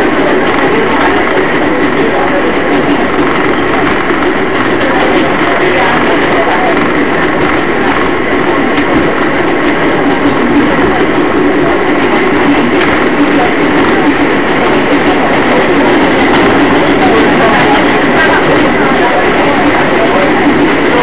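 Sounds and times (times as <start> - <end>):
subway train running: 0.0 - 21.0.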